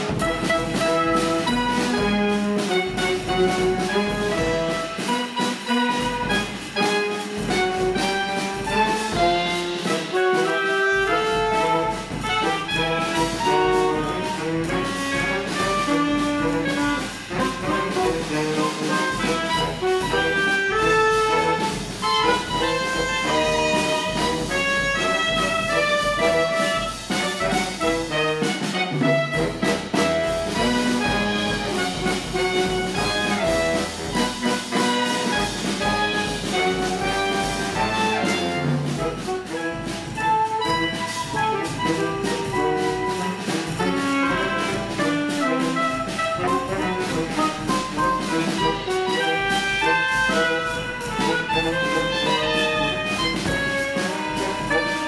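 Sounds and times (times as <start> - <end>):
drum kit: 0.0 - 55.0
saxophones playing: 0.0 - 55.0.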